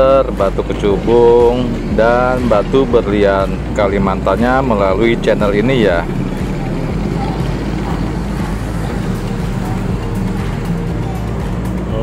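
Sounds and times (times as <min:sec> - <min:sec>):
motorcycles passing: 0:00.0 - 0:12.0
pickup truck passing: 0:00.0 - 0:12.0.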